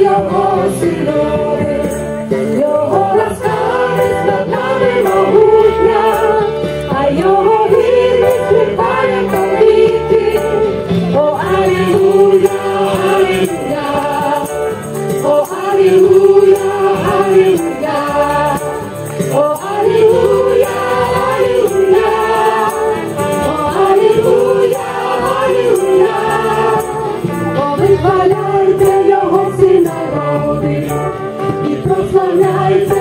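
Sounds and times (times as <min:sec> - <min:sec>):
choir singing with accompaniment: 0:00.0 - 0:33.0.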